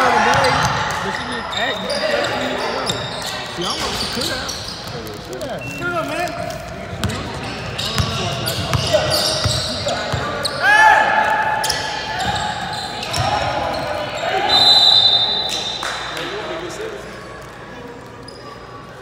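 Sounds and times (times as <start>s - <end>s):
sneakers squeaking: 0.0s - 19.0s.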